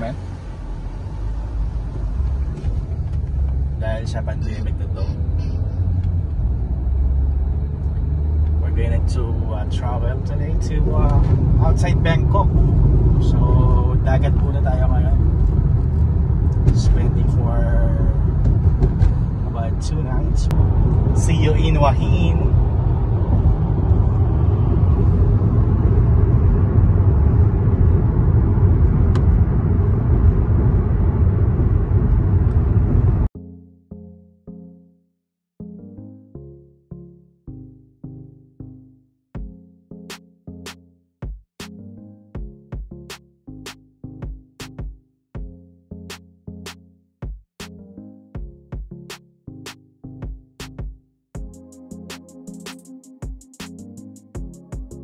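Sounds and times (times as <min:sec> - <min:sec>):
car engine and road rumble: 0:00.0 - 0:33.3.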